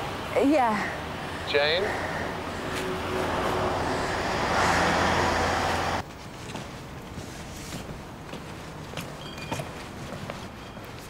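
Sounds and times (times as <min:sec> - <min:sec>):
quiet street background: 0:00.0 - 0:11.0
road traffic rushing: 0:00.0 - 0:11.0.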